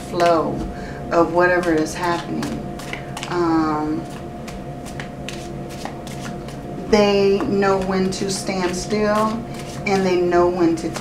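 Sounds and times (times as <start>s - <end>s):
cards being shuffled: 4.0s - 6.6s, 8.6s - 10.0s.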